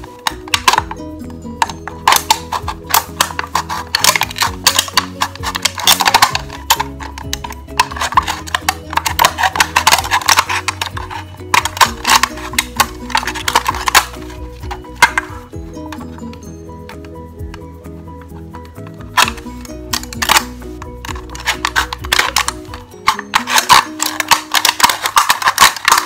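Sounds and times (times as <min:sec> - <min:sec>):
utility knife cutting metal can: 0:00.0 - 0:17.0, 0:19.1 - 0:26.0
background music: 0:00.0 - 0:26.0.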